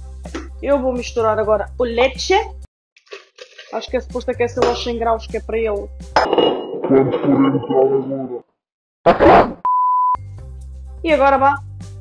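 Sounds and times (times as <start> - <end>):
glass bowl and dishes clinking: 6.2 - 7.8.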